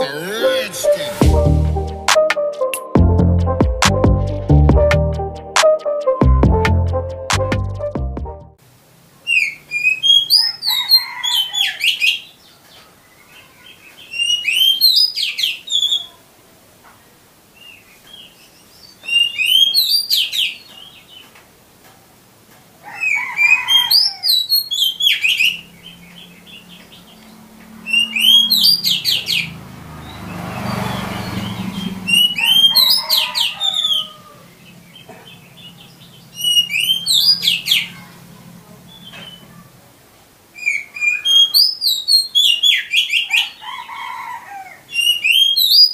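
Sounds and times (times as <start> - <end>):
bird singing varied whistles: 19.0 - 20.4, 31.5 - 33.0, 36.4 - 37.6, 40.6 - 43.3, 45.0 - 45.9.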